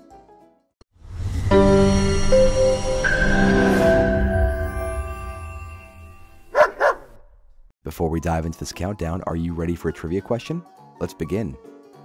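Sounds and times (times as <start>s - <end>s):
held music chord: 1.5s - 6.6s
dog barking: 6.5s - 7.2s.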